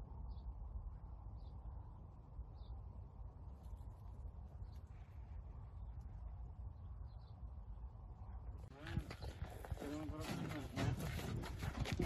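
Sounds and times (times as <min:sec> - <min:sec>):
people talking: 0:08.7 - 0:12.0.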